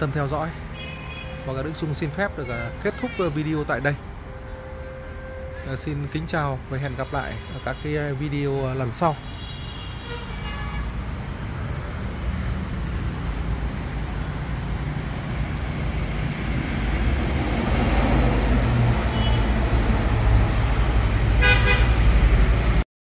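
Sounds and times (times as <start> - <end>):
road traffic rumbling: 0.0 - 22.8
vehicle horn toot: 9.3 - 11.0, 19.1 - 19.5, 21.4 - 22.0.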